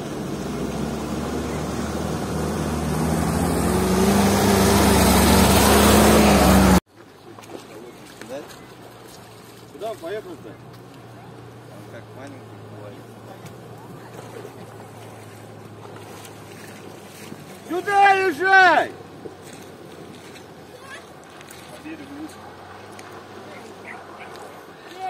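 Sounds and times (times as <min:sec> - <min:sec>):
distant truck engine hum: 0:00.0 - 0:06.8, 0:07.8 - 0:17.8.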